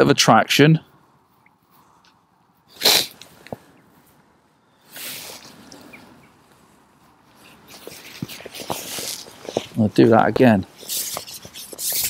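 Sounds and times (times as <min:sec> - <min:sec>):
man sniffing: 0:02.7 - 0:03.4, 0:04.9 - 0:05.6
man breathing with hiss: 0:04.7 - 0:06.0.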